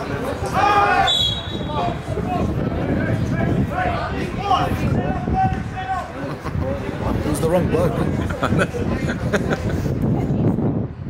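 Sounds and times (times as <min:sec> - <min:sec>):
loud shout: 0:00.5 - 0:02.5
referee's whistle blast: 0:01.0 - 0:01.7.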